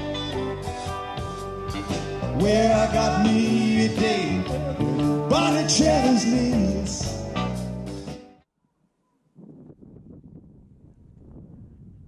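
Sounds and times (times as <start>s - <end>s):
wind rumble on microphone: 9.4s - 12.0s.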